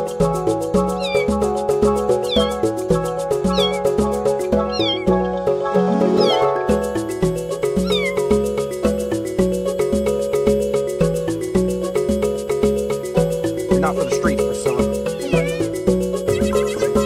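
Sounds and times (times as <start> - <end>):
background music with beat: 0.0 - 17.0
kitten meowing: 0.9 - 1.4, 2.2 - 2.6, 3.4 - 5.2, 6.2 - 6.5, 7.8 - 8.3, 15.1 - 15.8.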